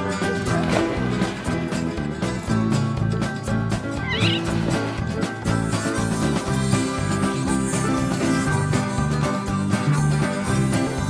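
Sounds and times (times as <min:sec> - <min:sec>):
country instrumental music: 0:00.0 - 0:11.0
cat meow: 0:04.0 - 0:04.6.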